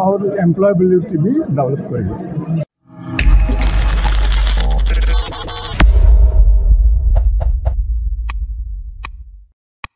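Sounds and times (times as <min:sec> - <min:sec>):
deep bass boom: 0:05.8 - 0:09.5.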